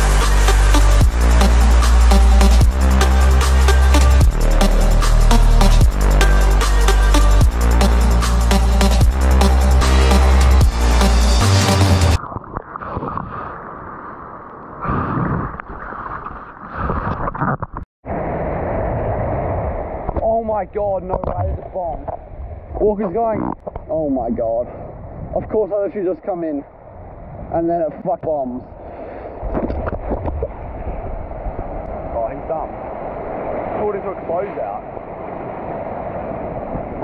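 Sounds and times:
wind: 12.2s - 37.0s
muffled surf rushing: 18.1s - 25.8s, 26.9s - 37.0s.

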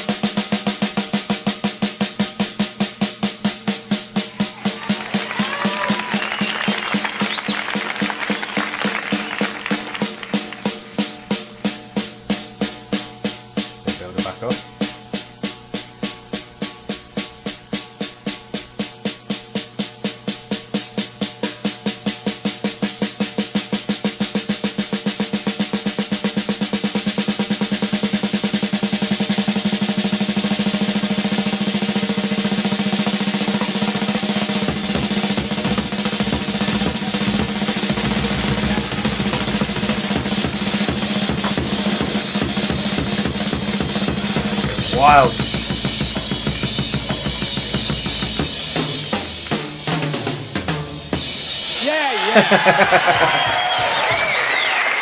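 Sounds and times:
snare drum roll: 0.0s - 55.0s.

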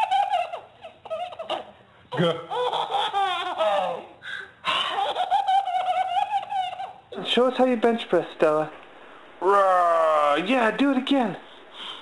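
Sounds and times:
baby laughing: 0.0s - 7.1s.

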